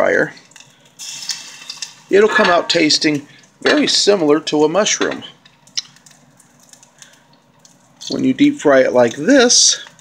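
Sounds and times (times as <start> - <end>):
batter frying in hot oil: 0.0 - 10.0
small crackles: 0.4 - 3.6, 5.3 - 10.0.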